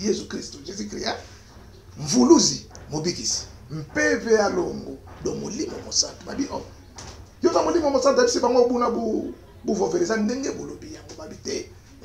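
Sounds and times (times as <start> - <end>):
man speaking: 0.0 - 6.8, 7.4 - 12.0.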